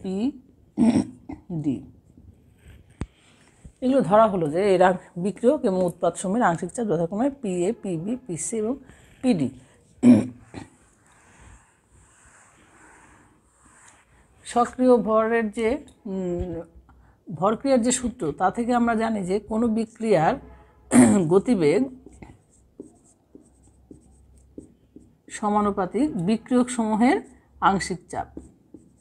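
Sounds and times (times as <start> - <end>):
eraser rubbing whiteboard: 8.4 - 14.7, 21.6 - 25.2, 28.2 - 29.0
marker squeaking on whiteboard: 21.5 - 25.4, 28.0 - 29.0.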